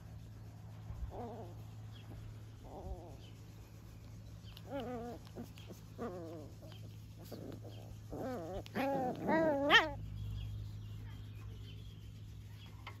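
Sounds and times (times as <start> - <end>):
puppies yelping: 1.1 - 10.5.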